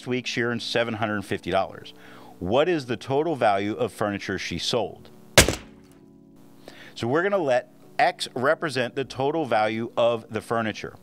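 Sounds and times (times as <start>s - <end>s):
sharp thud: 5.4s - 5.8s.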